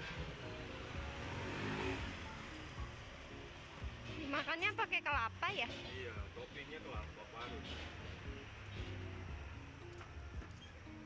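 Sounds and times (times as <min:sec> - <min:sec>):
vehicle accelerating: 0:00.0 - 0:04.8
low traffic rumble: 0:00.0 - 0:11.0.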